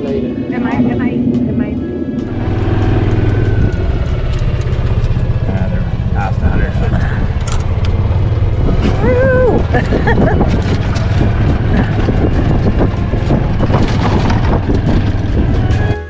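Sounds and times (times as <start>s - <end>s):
golf cart running: 0.0s - 16.0s.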